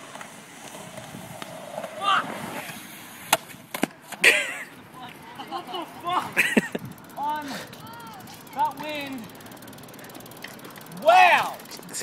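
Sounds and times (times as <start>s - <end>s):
bike freewheel ticking: 4.2s - 12.0s.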